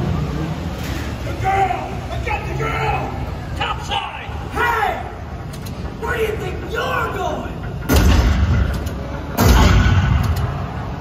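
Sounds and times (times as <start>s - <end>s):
pyrotechnic boom: 9.4s - 10.3s.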